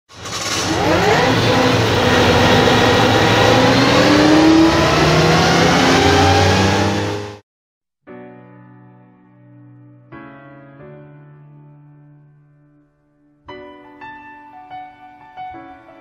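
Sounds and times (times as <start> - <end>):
engine revving: 0.1 - 7.4
rushing noise: 0.2 - 7.4.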